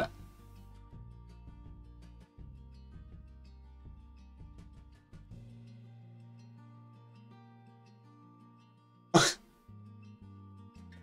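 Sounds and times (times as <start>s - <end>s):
faint guitar music: 0.0s - 11.0s
man coughing: 9.2s - 9.4s.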